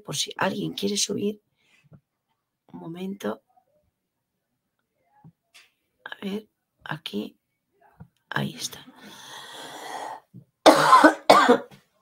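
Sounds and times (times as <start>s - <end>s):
woman coughing: 10.6s - 11.8s.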